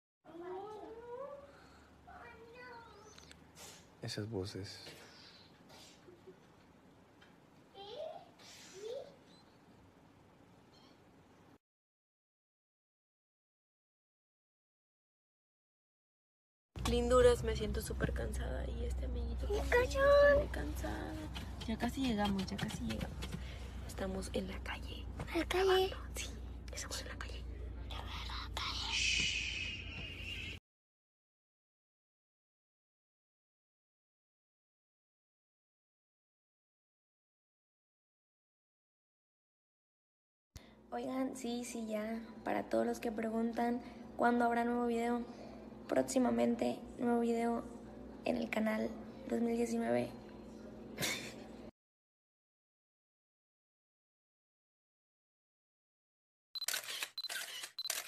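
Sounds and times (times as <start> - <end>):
person whispering: 25.9 - 29.2.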